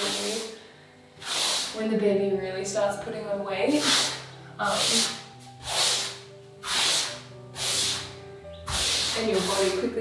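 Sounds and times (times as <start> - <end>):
paintbrush swishing across a wall: 0.0 - 0.5, 3.7 - 10.0
faint background music: 0.0 - 10.0.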